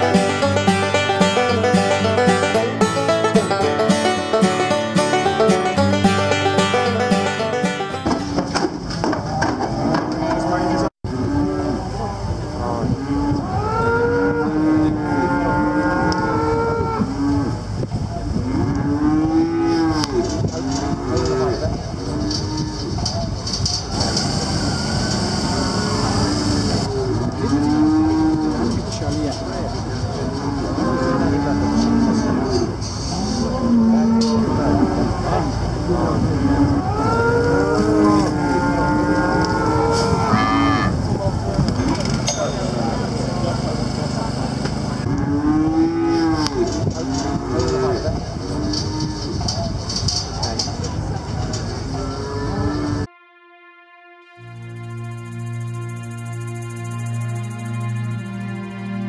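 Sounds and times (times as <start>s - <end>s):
cattle mooing: 13.0s - 17.6s, 30.4s - 35.5s, 36.4s - 41.0s, 45.0s - 49.4s.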